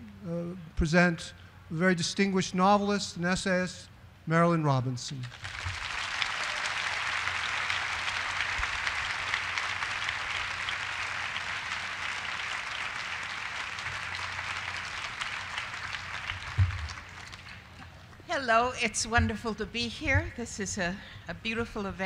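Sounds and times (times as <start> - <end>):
audience applauding: 5.3 - 18.0.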